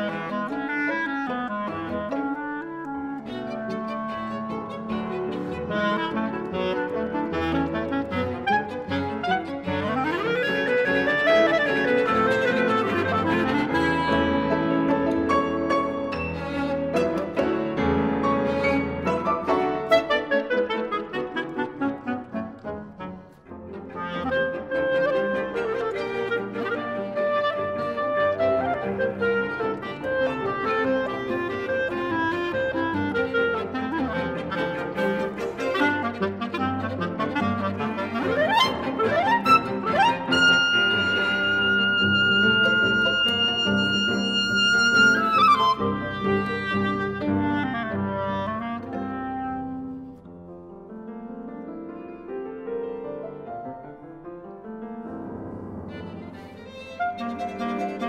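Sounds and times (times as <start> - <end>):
chamber music ensemble: 0.0 - 58.0.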